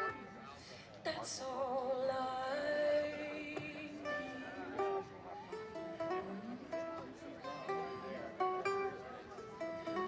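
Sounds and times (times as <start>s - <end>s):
plucked string accompaniment: 0.0s - 10.0s
woman singing: 1.0s - 4.8s.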